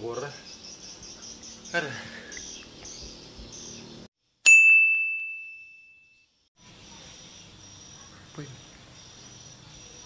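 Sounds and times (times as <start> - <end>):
high bell-like ding: 4.4 - 6.3.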